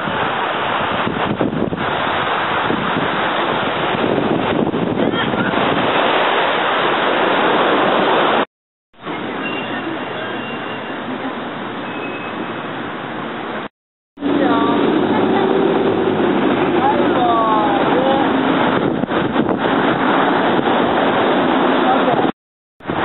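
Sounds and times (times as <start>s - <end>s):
surf: 0.0s - 23.0s
wind: 0.0s - 23.0s.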